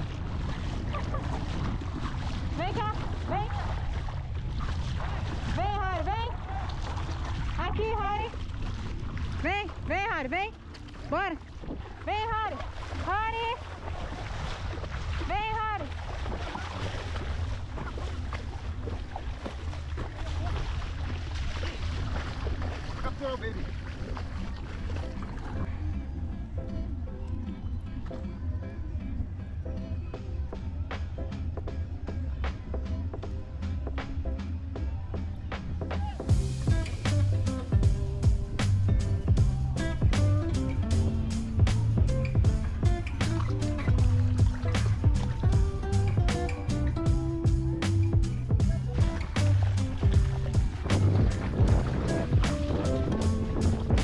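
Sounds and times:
music: 0.0 - 4.6, 5.5 - 8.5, 9.4 - 54.0
wind buffeting microphone: 0.0 - 28.1, 36.2 - 54.0
sloshing shallow water: 0.0 - 54.0.

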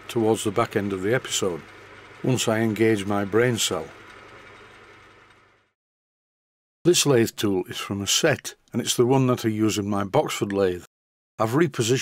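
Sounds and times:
metal lathe motor hum: 0.0 - 5.7.

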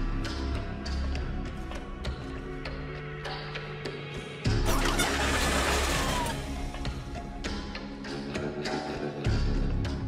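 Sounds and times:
background score music: 0.0 - 10.0.

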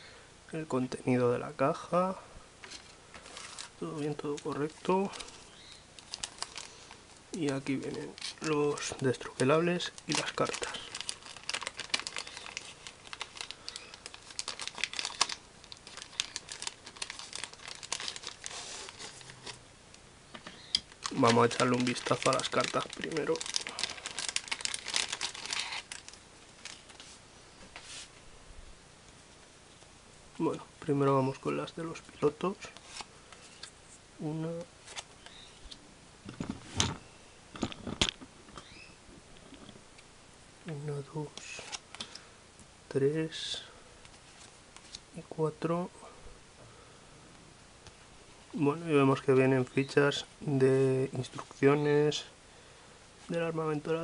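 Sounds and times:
plastic bag crinkling: 3.2 - 19.6, 20.8 - 27.1.

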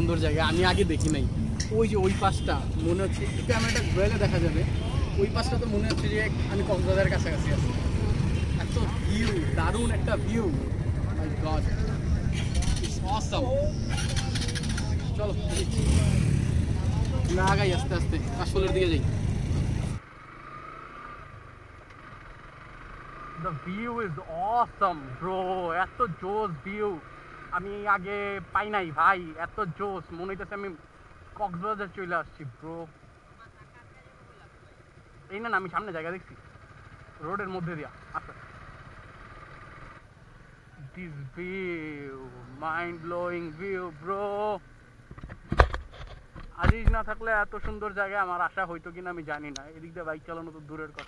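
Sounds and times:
motorcycle engine running: 0.0 - 23.7, 33.0 - 40.8
road noise: 0.0 - 51.0
motorcycle engine idling: 32.9 - 43.7.

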